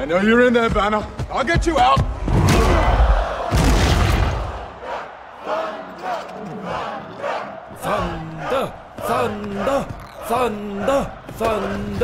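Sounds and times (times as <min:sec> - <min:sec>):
crowd chanting and shouting: 0:02.0 - 0:12.0.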